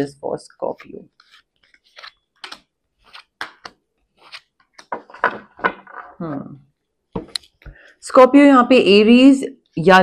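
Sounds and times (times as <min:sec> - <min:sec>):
cards shuffled by hand: 0:00.8 - 0:06.1.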